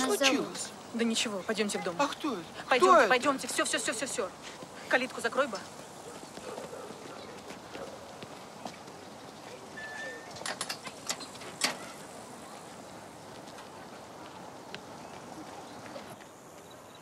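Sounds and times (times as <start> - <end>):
metal gate squeaking: 9.8 - 12.0.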